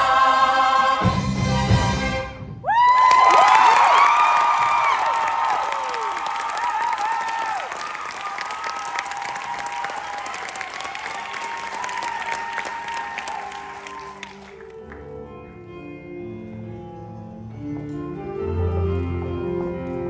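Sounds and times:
high whoops and screams: 2.6s - 14.4s
audience applauding: 2.8s - 15.0s.

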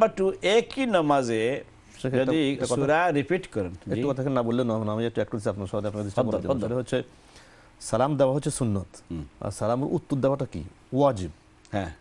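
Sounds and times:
man speaking: 0.0s - 7.1s.

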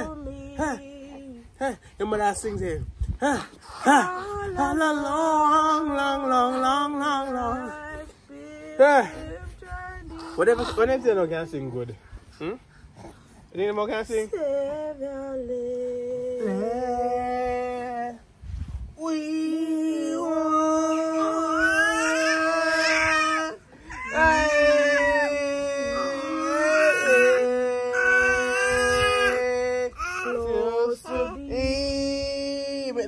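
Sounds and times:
woman singing long notes: 14.9s - 18.2s, 19.0s - 32.9s.

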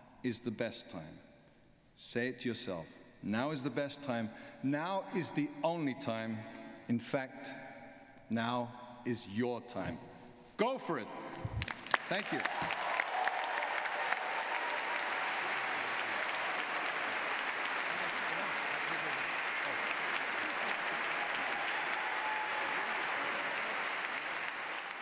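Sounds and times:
audience applauding: 11.5s - 25.0s.

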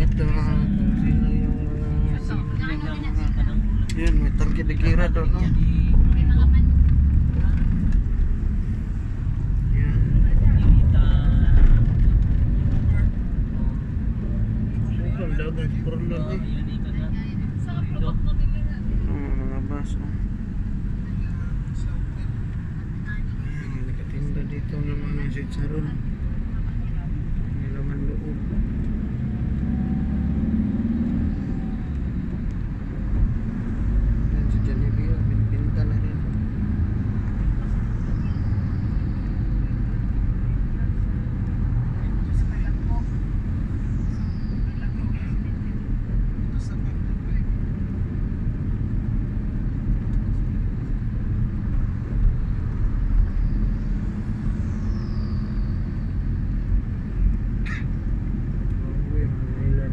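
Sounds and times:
vehicle engine and tyre rumble: 0.0s - 59.9s.

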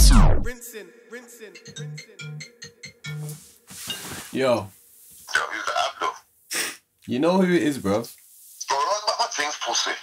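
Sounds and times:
smartphone ringtone: 1.5s - 3.6s.

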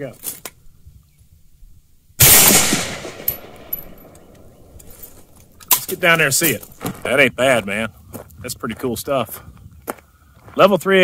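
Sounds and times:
rifle shot: 2.2s - 4.8s.

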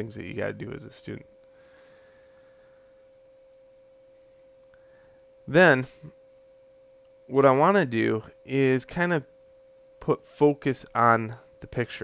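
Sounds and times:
faint steady whine: 0.0s - 12.0s.

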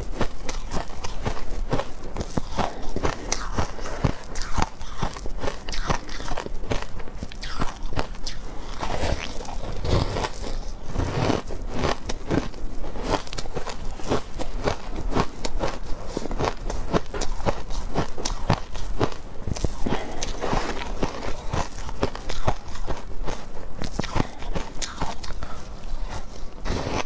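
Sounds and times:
ice being chewed: 0.0s - 27.0s.

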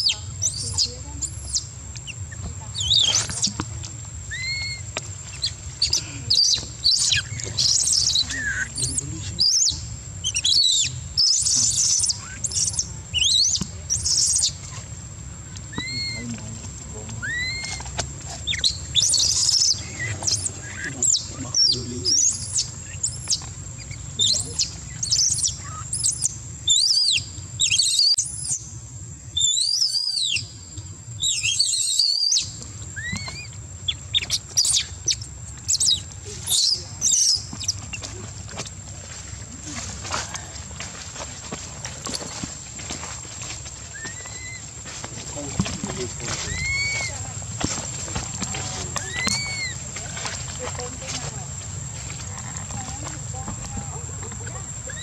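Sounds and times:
infant monkey crying: 4.3s - 4.9s, 5.8s - 13.4s, 15.8s - 16.4s, 17.2s - 17.9s, 18.5s - 23.4s, 33.0s - 33.5s, 43.9s - 44.7s, 46.3s - 47.3s, 48.7s - 49.9s.

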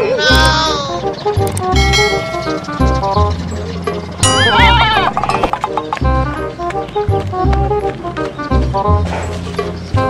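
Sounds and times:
background music: 0.0s - 10.0s
goat bleating: 4.3s - 5.2s.

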